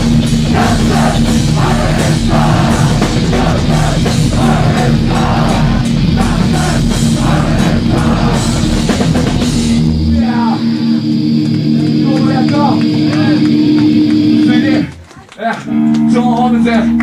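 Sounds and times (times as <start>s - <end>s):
electric guitar ringing: 0.0s - 17.0s
punk band playing: 0.0s - 17.0s.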